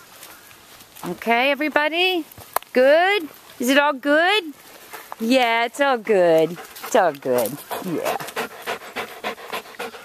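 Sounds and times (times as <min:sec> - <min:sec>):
dog panting rapidly: 0:06.4 - 0:10.0.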